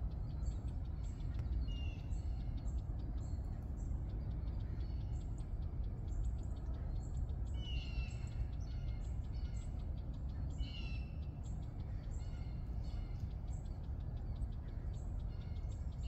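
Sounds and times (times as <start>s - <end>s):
birds chipping: 0.0s - 16.0s.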